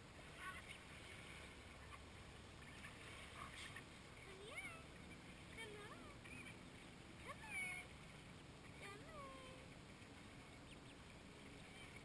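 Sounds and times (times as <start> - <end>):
duckling peeps: 6.2 - 6.6.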